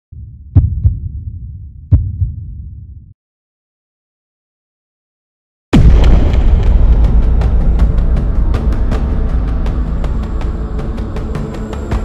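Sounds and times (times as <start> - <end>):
heartbeat thumps: 0.1 - 3.1
low rumble: 0.1 - 3.2, 5.8 - 11.8.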